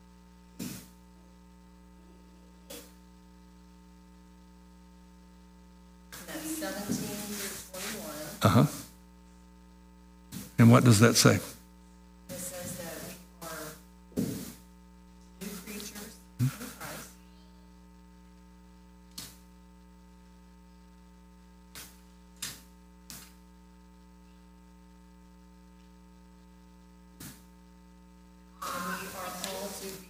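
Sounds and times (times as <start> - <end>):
electrical mains hum: 0.0 - 30.0.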